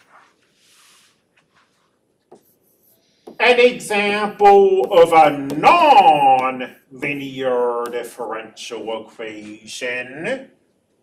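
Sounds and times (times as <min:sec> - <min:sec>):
stylus scratching on tablet screen: 0:00.0 - 0:03.6
stylus tap: 0:04.8 - 0:07.2.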